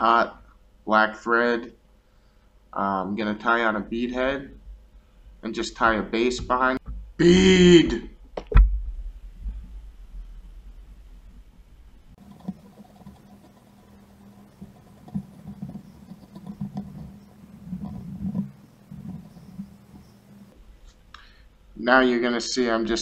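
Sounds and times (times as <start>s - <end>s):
low steady hum: 0.0s - 23.0s.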